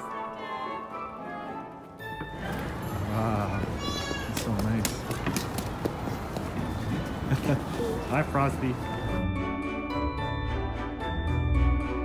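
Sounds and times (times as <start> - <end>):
street noise: 1.2 - 10.5
people talking: 3.0 - 5.7, 7.3 - 8.8.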